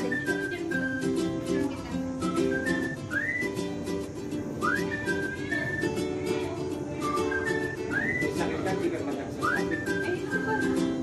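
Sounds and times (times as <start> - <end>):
plucked string accompaniment: 0.0 - 11.0
whistled melody: 0.0 - 11.0.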